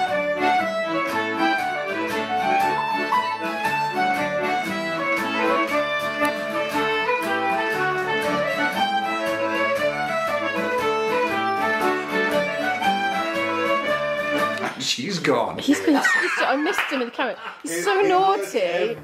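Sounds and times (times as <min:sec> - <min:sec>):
flute: 0:00.0 - 0:14.7
fiddle: 0:00.0 - 0:14.8
accordion: 0:00.0 - 0:14.9
strummed acoustic guitar: 0:00.0 - 0:14.9.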